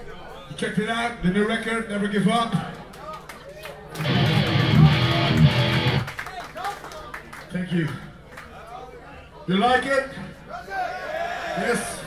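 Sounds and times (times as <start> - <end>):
electric guitar played loudly: 4.0 - 6.1.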